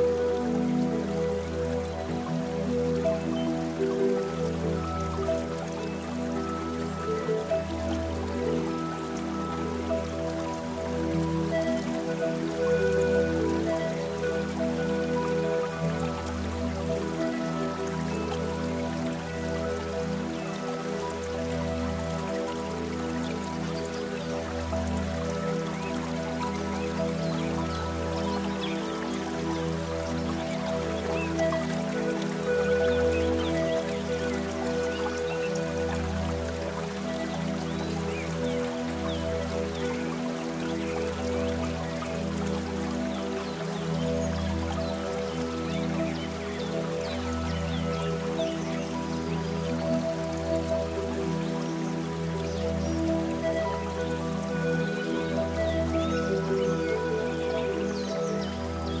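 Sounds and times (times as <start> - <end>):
faint patter of dripping water: 0.0 - 59.0
soft slow piano music: 0.0 - 59.0.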